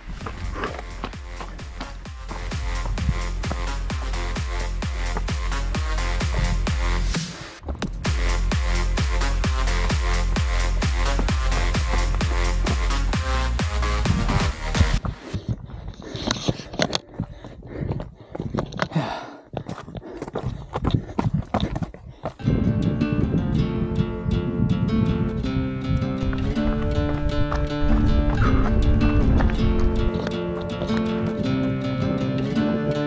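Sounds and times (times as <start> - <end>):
footsteps on rocky trail: 0.0 - 8.1, 8.8 - 22.8, 25.8 - 32.4
background music: 0.0 - 15.0, 26.3 - 33.0.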